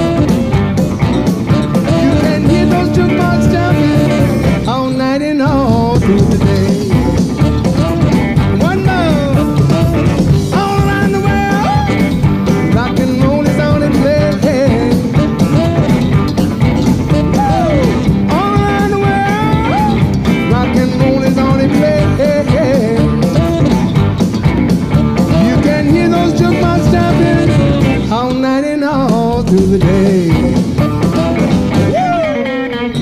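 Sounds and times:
live rock band playing: 0.0 - 33.0
sliding lead guitar notes: 0.0 - 33.0.

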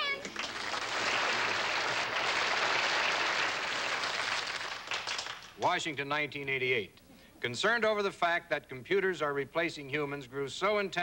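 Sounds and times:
audience laughing and applauding: 0.4 - 5.4.

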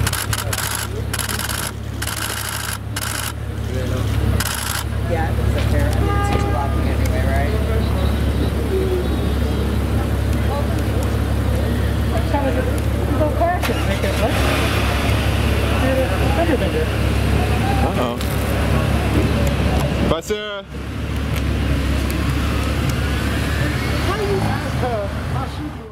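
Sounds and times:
low voices talking: 0.0 - 20.7
car engine idling: 0.0 - 25.7
street traffic: 0.0 - 25.9.

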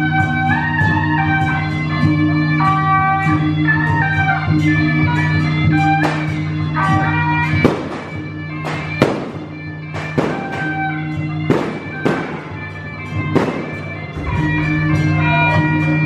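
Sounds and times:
firecracker bangs: 7.6 - 10.9, 11.5 - 12.6, 13.3 - 15.1.

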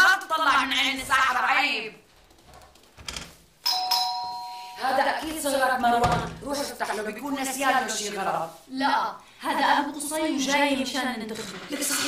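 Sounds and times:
doorbell chime: 3.6 - 4.8.

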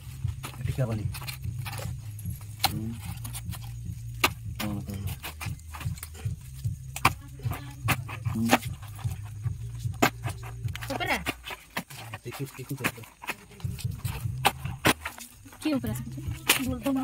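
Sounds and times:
dry comb cracking and crunching: 0.0 - 17.0
steady low hum: 0.0 - 17.0.

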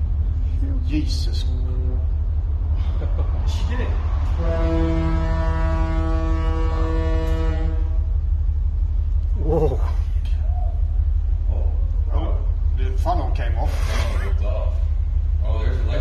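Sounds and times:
low rumble: 0.0 - 16.0
ship's horn blast: 4.1 - 9.0.

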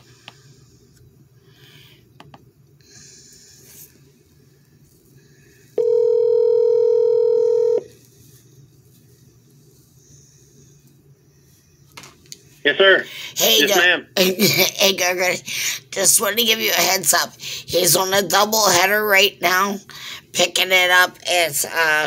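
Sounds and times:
telephone ringback tone: 5.8 - 7.9.

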